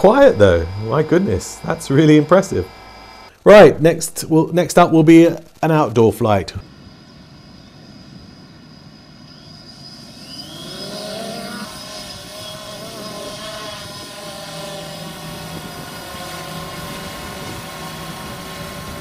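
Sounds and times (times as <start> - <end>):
quadcopter propellers buzzing: 0.0 - 3.4, 8.2 - 19.0.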